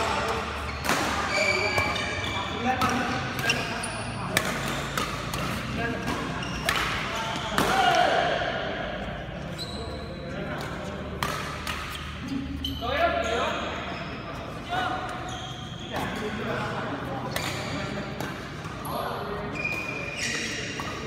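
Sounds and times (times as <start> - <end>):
players' voices: 0.0 - 21.0
shoe squeaks on court: 0.1 - 7.6, 9.4 - 10.9, 11.6 - 21.0
racket striking shuttlecock: 2.8 - 8.1, 10.5 - 12.1.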